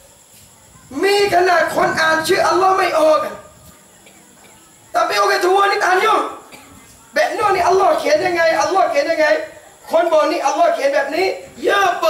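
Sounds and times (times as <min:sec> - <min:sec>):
background hiss: 0:00.0 - 0:12.0
steady high-pitched whine: 0:00.0 - 0:12.0
man's amplified voice: 0:00.9 - 0:03.4, 0:04.9 - 0:06.4, 0:07.2 - 0:12.0.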